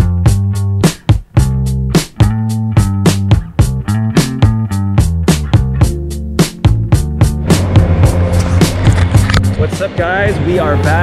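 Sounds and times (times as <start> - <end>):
music with a steady beat: 0.0 - 11.0
loud rushing noise: 7.2 - 11.0
man speaking: 9.6 - 11.0.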